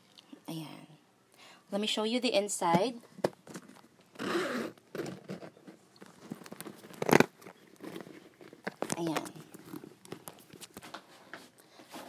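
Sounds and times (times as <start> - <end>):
bag rustling and clicks: 3.4 - 11.2
handbag zipper pulled open: 4.1 - 5.6.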